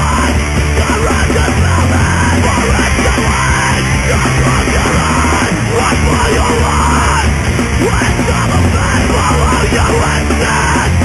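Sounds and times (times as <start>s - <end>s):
hardcore punk music: 0.0s - 11.0s.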